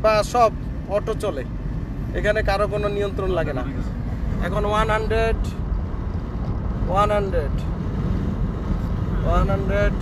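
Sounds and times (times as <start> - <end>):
car engine idling: 0.0 - 10.0
road and wind rumble in car: 0.0 - 10.0.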